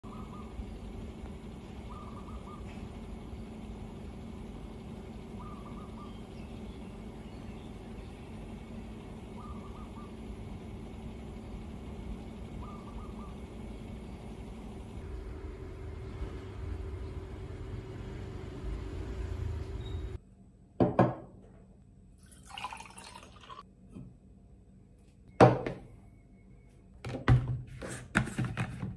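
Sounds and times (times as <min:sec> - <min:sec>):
low background rumble: 0:00.0 - 0:20.2.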